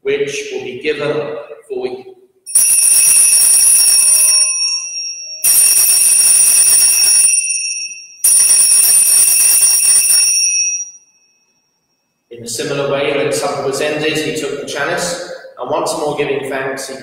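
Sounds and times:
bells jingling: 0:04.1 - 0:06.2, 0:07.0 - 0:09.0, 0:10.2 - 0:11.4.

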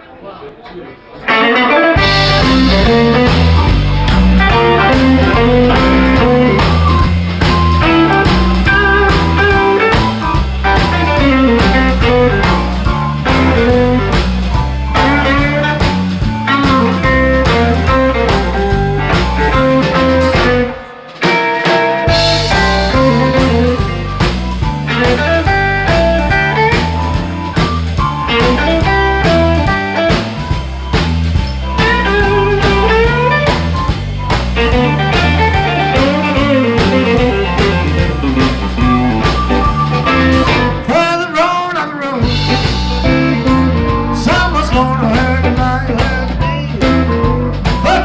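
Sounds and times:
bass guitar: 0:01.2 - 0:48.0
electric guitar: 0:01.2 - 0:48.0
electric keyboard: 0:01.3 - 0:40.9, 0:41.9 - 0:48.0
drum kit: 0:01.3 - 0:48.0.

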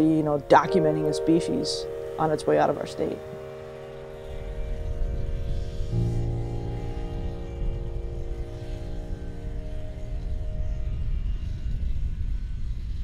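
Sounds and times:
held music notes: 0:00.0 - 0:12.0.

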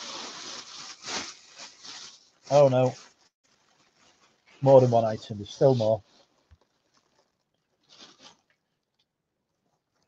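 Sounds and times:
faint clothing rustle: 0:00.0 - 0:10.0.

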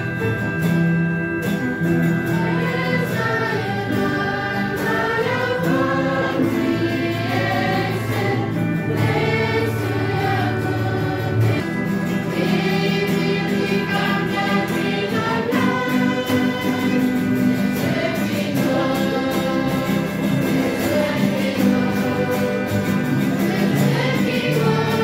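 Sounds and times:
choir singing a hymn: 0:02.2 - 0:25.0.

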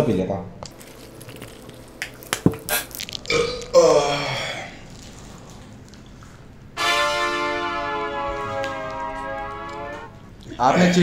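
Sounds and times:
man burping: 0:03.2 - 0:04.9.

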